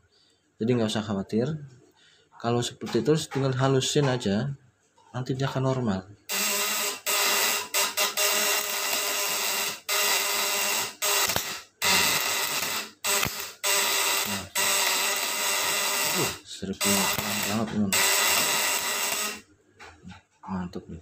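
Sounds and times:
contact breaker buzzing: 6.3 - 19.9.

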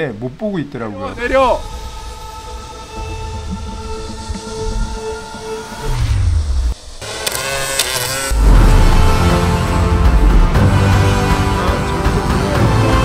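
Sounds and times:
drone propellers humming: 1.6 - 13.0
loud music: 8.3 - 13.0.

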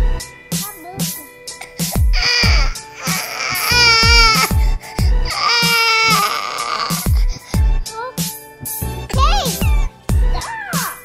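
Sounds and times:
background music with drum beat: 0.0 - 11.0
toddler crying: 1.6 - 7.6.

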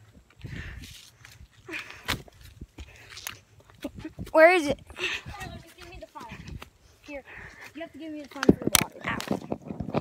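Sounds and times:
footsteps through undergrowth: 5.3 - 9.9.

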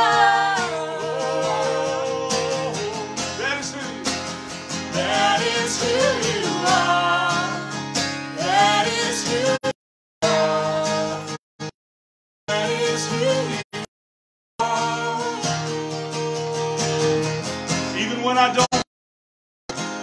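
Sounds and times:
woman singing: 0.0 - 3.4, 5.0 - 7.7, 8.4 - 11.3, 14.6 - 15.6
man singing: 0.0 - 4.2, 4.9 - 7.7, 8.4 - 11.3, 12.5 - 13.9, 14.6 - 15.4
acoustic guitar strumming: 0.0 - 11.7, 12.5 - 13.9, 14.6 - 18.8, 19.7 - 20.0.

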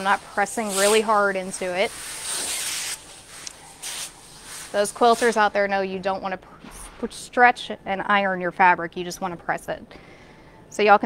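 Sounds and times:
steam iron hissing: 0.0 - 5.5.

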